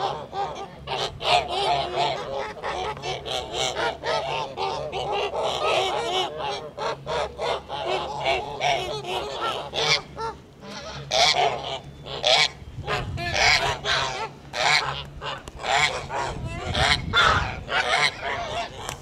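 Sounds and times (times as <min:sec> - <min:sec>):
geese honking: 0:00.0 - 0:19.0.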